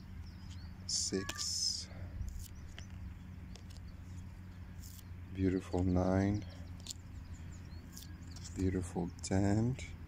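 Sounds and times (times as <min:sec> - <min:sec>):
low steady hum: 0:00.0 - 0:10.0
cards sliding rustle: 0:02.2 - 0:05.1, 0:06.7 - 0:07.1.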